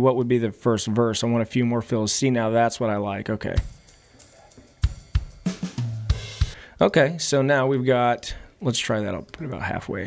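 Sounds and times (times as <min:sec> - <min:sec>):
drum fill: 0:03.6 - 0:06.8.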